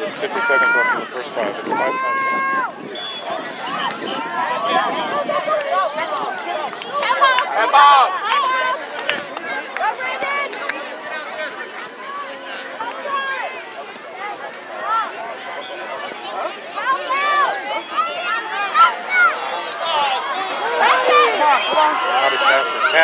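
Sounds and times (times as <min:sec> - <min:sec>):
distant shouts and calls: 0:00.0 - 0:10.6, 0:11.9 - 0:23.0.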